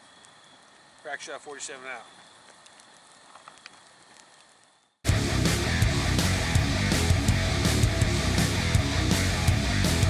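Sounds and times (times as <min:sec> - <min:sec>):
campfire crackling and popping: 0:00.0 - 0:10.0.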